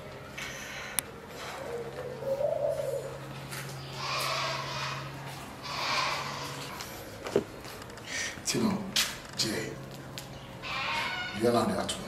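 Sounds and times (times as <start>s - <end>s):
steady low hum: 0.0s - 11.1s.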